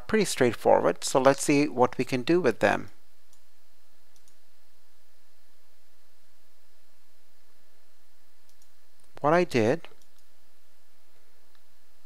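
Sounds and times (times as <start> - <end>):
low electrical hum: 0.0 - 12.0
faint clicks: 4.1 - 4.4, 8.4 - 9.2, 9.8 - 10.3.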